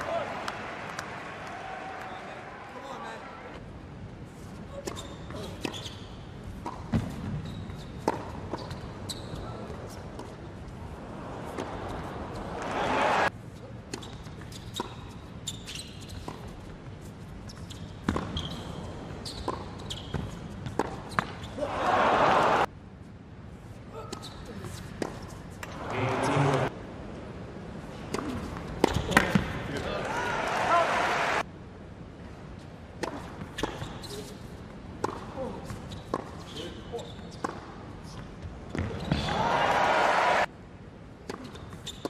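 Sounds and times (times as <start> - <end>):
crowd cheering and applause: 0.0 - 3.3, 12.5 - 13.3, 21.7 - 22.7, 30.0 - 31.4, 39.2 - 40.5
ball bouncing on hard court: 6.6 - 9.3, 17.7 - 21.5, 28.1 - 29.8, 33.0 - 34.0, 35.0 - 36.4, 37.3 - 39.4
tennis ball struck by rackets: 8.0 - 8.7, 28.1 - 29.6, 35.0 - 35.3.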